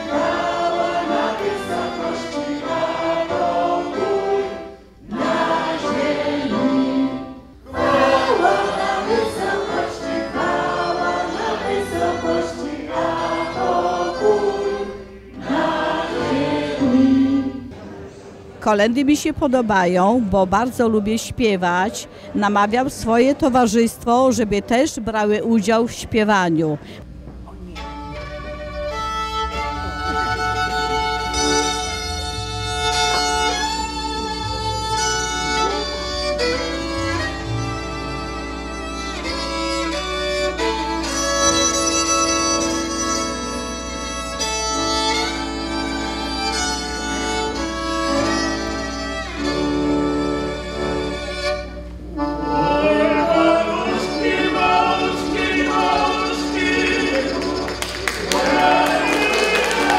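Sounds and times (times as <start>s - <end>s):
violin melody: 0.0s - 17.7s, 27.6s - 59.9s
group of voices singing: 0.0s - 17.9s, 52.3s - 59.9s
folk ensemble playing a carol: 0.0s - 24.4s, 27.2s - 59.9s.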